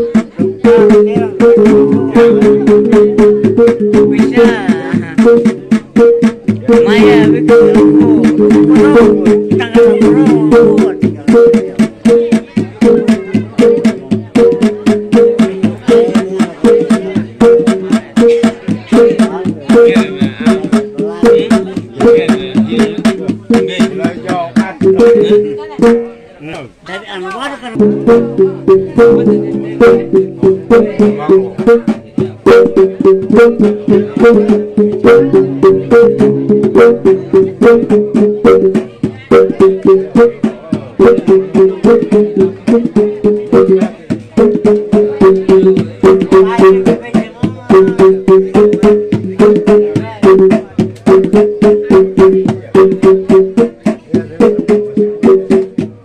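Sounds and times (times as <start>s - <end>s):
drum beats: 0.0s - 56.0s.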